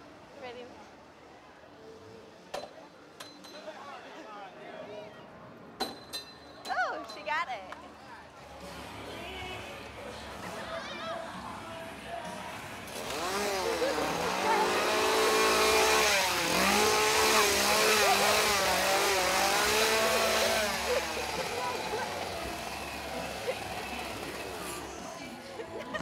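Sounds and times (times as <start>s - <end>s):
chainsaw engine revving: 12.8s - 25.4s.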